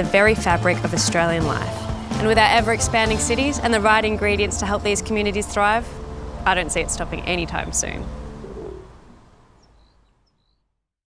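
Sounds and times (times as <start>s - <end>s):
low rumble: 1.2s - 9.8s
faint bird chirps: 7.1s - 10.7s.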